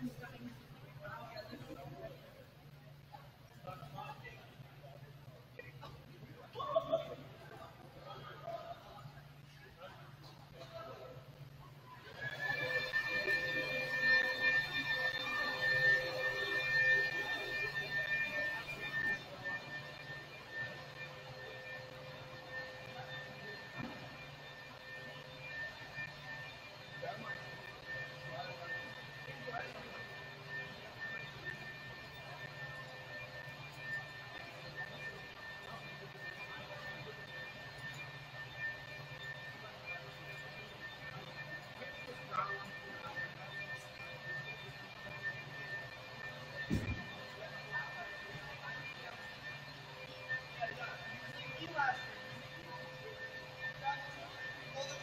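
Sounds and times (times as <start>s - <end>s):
faint voices: 0.0s - 55.0s
high-pitched whine: 0.0s - 55.0s.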